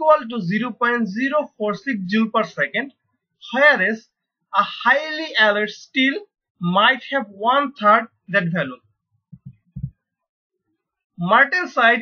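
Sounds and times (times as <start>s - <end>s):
dull low thumps: 9.3s - 9.9s.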